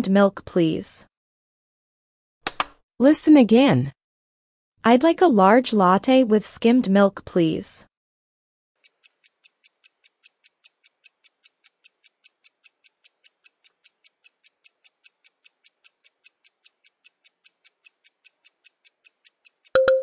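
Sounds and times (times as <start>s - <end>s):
countdown timer ticking: 8.8s - 20.0s.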